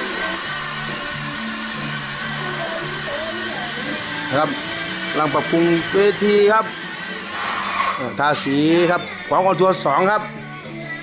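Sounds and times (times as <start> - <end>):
steady rushing hiss: 0.0 - 8.7.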